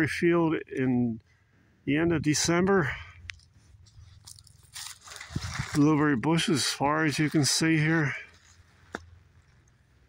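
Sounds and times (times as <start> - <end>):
footsteps in dry grass: 3.3 - 9.8.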